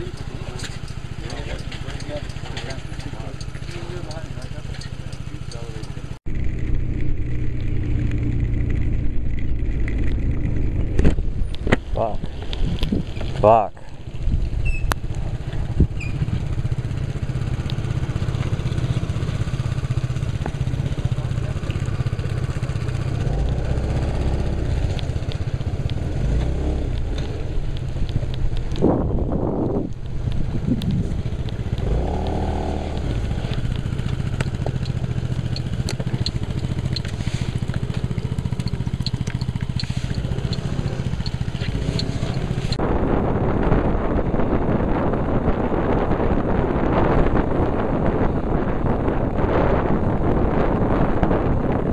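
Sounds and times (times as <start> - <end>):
tyres on wet road: 0.0 - 42.8
scooter engine running: 0.0 - 51.9
wind noise: 6.0 - 51.9.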